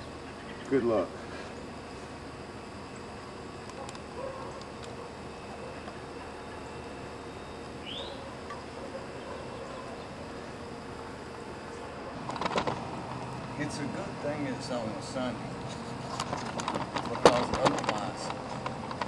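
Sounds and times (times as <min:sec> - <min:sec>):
faint hum: 0:00.0 - 0:19.0.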